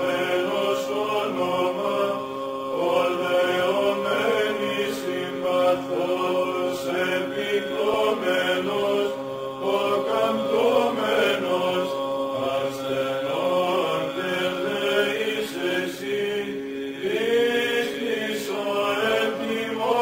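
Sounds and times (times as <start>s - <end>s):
held vocal drone: 0.0s - 20.0s
voices chanting a melody: 0.0s - 20.0s.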